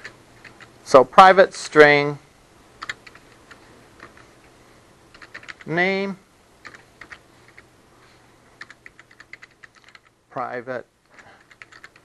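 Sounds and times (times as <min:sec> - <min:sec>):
computer keyboard keystrokes: 0:00.0 - 0:00.7, 0:02.8 - 0:04.3, 0:05.1 - 0:05.7, 0:06.6 - 0:07.7, 0:08.6 - 0:10.1, 0:11.1 - 0:12.0.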